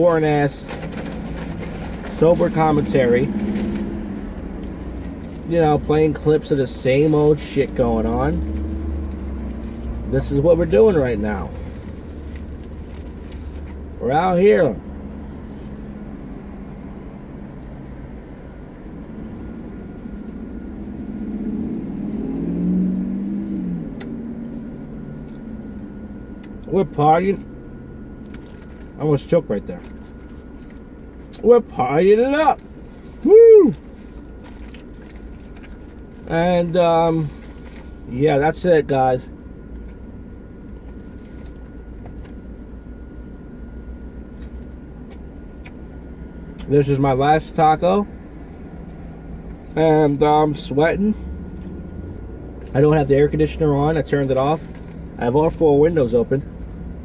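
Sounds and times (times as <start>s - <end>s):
car cabin rumble: 0.0s - 22.6s
steady low rumble: 0.0s - 57.0s.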